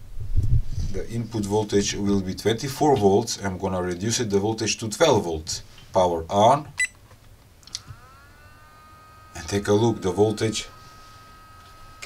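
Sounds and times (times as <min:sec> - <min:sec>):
electronic coil whine: 0:07.7 - 0:12.0.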